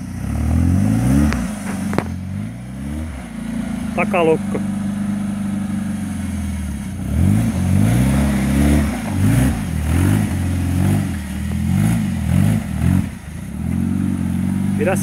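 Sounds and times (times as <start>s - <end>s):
engine revving: 0.0s - 15.0s.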